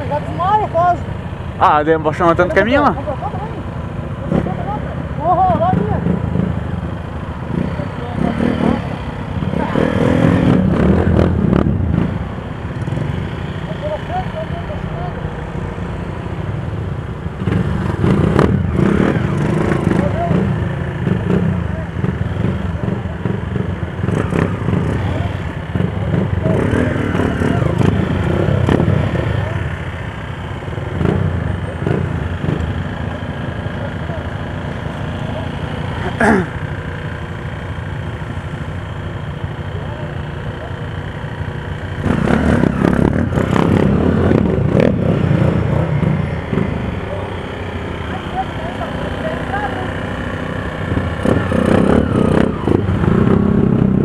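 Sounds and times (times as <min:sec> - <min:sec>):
people talking: 0:00.0 - 0:03.6, 0:04.2 - 0:06.1, 0:13.6 - 0:15.3, 0:19.7 - 0:23.4, 0:25.0 - 0:28.2, 0:29.2 - 0:29.7, 0:33.6 - 0:34.4, 0:35.2 - 0:36.5, 0:46.9 - 0:50.3
motorcycle engines idling: 0:00.0 - 0:54.0.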